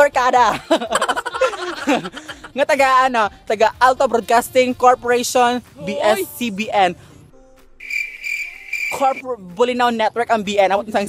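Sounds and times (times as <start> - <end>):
cricket chirping: 7.8 - 9.2.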